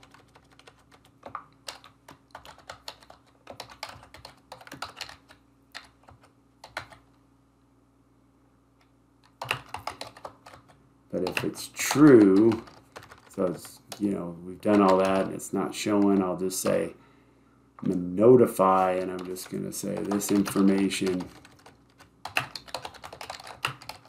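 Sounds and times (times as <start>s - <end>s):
typing on computer keyboard: 0.0s - 7.1s, 9.2s - 15.3s, 18.8s - 24.0s.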